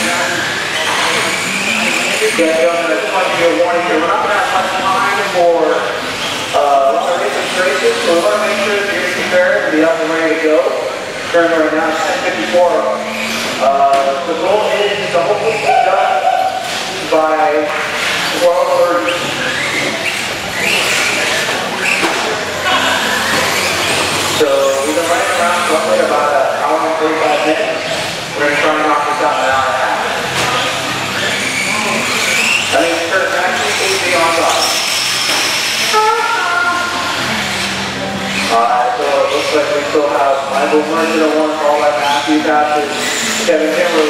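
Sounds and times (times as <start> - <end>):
radio-controlled car motors whining: 0.0 - 5.4, 17.8 - 44.0
people talking indistinctly: 0.0 - 44.0.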